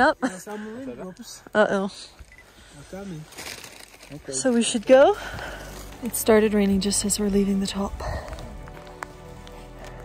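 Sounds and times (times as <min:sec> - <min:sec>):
quiet background music: 0:03.8 - 0:10.0.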